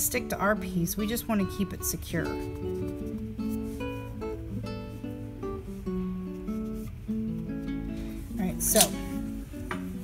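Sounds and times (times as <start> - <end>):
acoustic guitar picking melody: 0.0 - 10.0.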